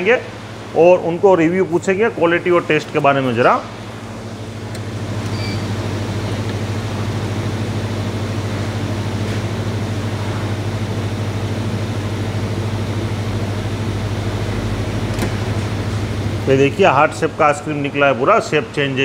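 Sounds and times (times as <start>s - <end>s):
ice cream machine humming: 0.0s - 19.0s.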